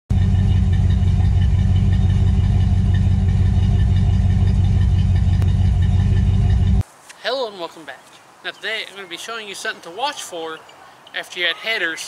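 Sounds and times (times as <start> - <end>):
car engine idling: 0.1 - 6.8.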